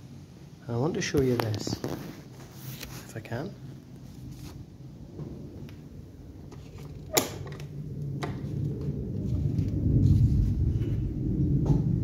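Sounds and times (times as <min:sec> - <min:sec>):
door creaking open: 0:06.5 - 0:08.5.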